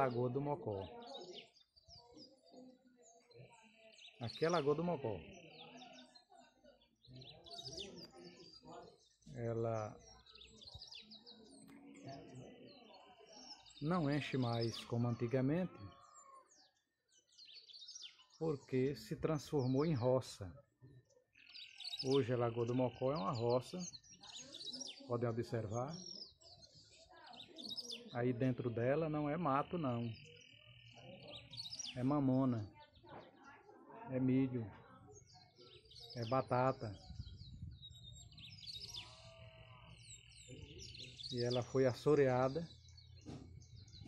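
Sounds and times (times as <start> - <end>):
faint birdsong chirps: 0.0 - 44.0.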